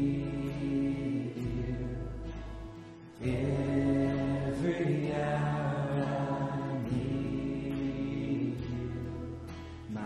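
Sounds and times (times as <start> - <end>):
acoustic guitar and band: 0.0 - 10.0.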